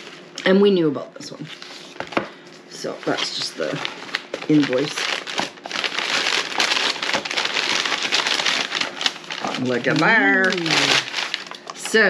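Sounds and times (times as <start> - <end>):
packing paper crinkling: 2.7 - 12.0.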